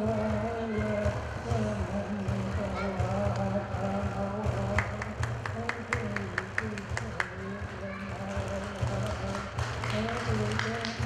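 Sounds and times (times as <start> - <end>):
frame drum beaten with stick: 0.0 - 11.0
person chanting: 0.0 - 11.0.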